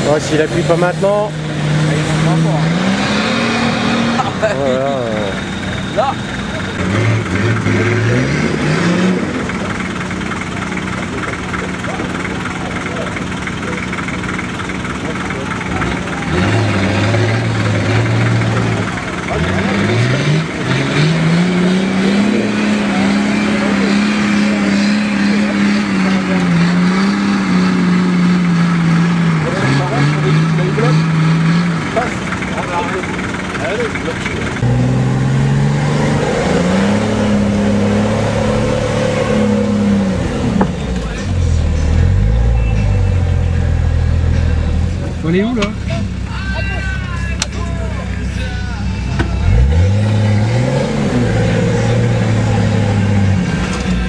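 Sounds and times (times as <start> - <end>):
off-road vehicle engine revving: 0.0 - 54.0.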